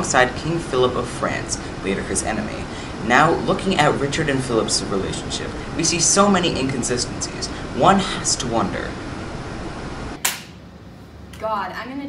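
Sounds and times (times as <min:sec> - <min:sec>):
room hiss: 0:00.0 - 0:11.1.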